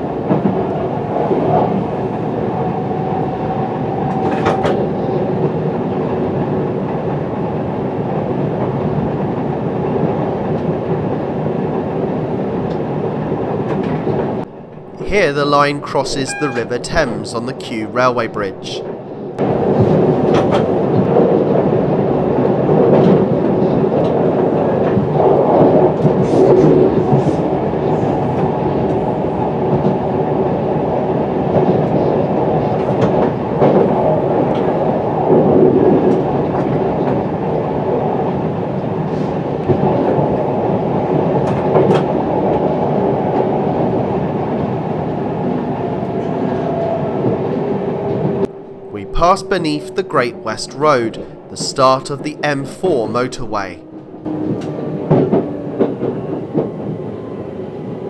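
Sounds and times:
electric train hum: 0.0s - 58.0s
train wheels rumbling on rail: 0.0s - 58.0s.

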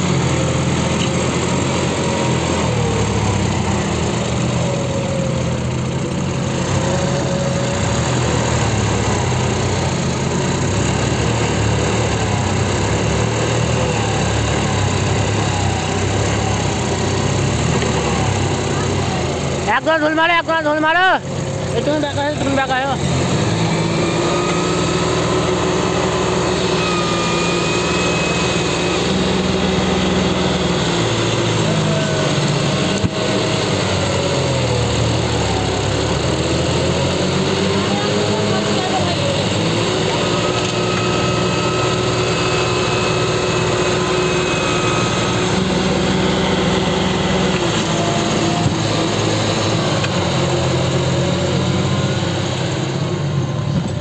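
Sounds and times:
tractor diesel engine under load: 0.0s - 54.0s.

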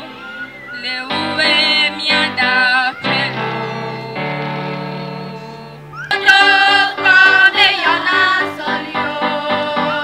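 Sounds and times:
musical backing: 0.0s - 10.0s.

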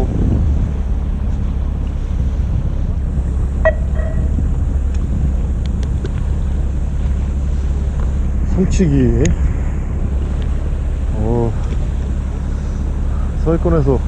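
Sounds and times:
wind buffeting microphone: 0.0s - 13.1s
boat engine rumble: 0.0s - 14.0s.

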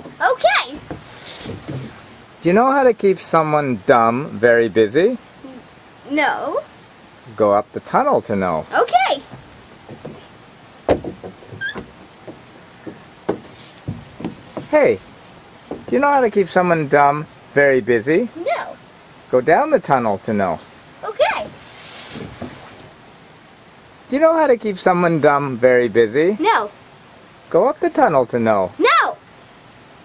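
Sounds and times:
child sliding down plastic slide: 0.7s - 2.2s, 21.4s - 22.9s
knocks and thumps in plastic tube: 9.3s - 10.3s, 10.9s - 14.8s, 15.7s - 16.0s
short squeak: 11.5s - 11.9s.

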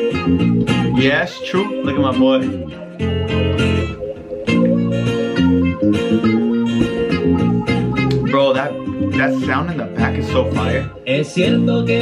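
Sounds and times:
acoustic guitars strumming: 0.0s - 12.0s
bass guitar: 0.0s - 12.0s.

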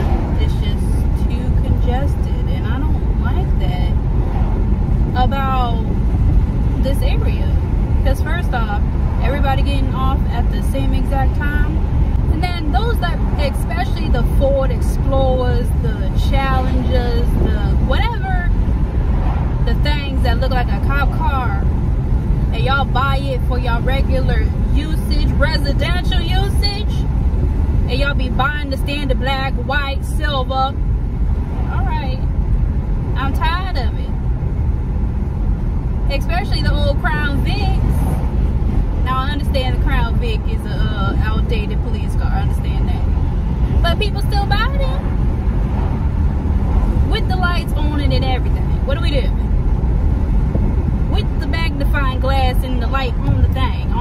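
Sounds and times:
woman talking: 0.0s - 4.0s, 5.2s - 5.9s, 6.8s - 18.6s, 19.6s - 21.6s, 22.5s - 27.0s, 27.9s - 30.8s, 31.7s - 32.2s, 33.2s - 34.2s, 36.1s - 38.2s, 39.0s - 43.1s, 43.8s - 45.1s, 47.0s - 49.4s, 51.1s - 54.0s
road and wind noise in car: 0.0s - 54.0s.

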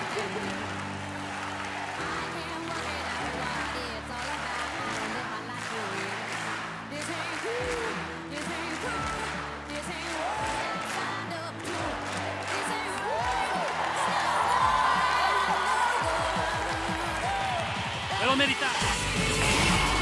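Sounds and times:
audience applauding and cheering: 0.0s - 20.0s
loud music: 0.0s - 20.0s.

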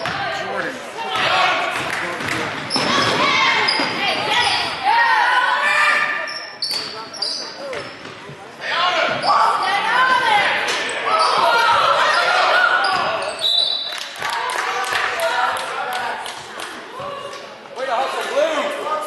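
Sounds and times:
sneakers squeaking on hardwood: 2.6s - 4.8s, 6.2s - 9.6s.

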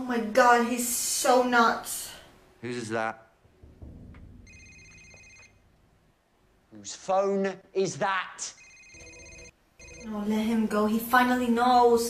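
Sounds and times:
mobile phone ringing: 4.4s - 5.6s, 8.5s - 10.2s.

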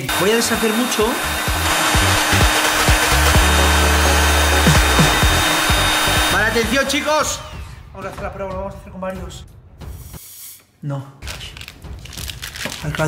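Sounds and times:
heat gun blowing air: 0.0s - 7.3s
background music with bass line: 1.3s - 6.9s.

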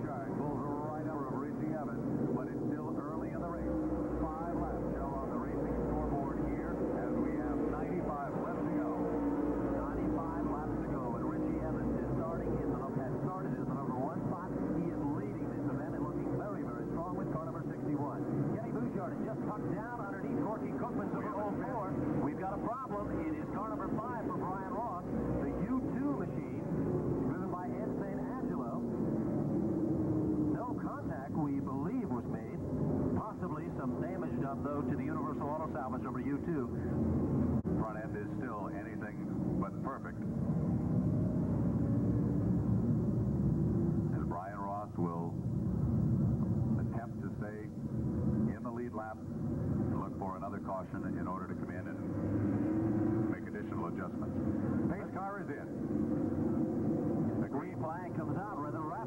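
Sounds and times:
droning race car engines: 0.0s - 59.0s.

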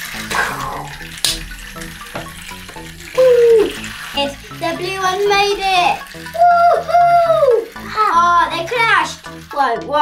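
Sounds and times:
background music: 0.0s - 10.0s
child crying out: 3.2s - 3.8s.

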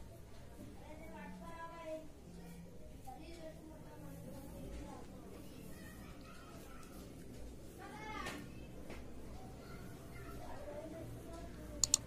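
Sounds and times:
sharp clicks: 11.8s - 12.0s.

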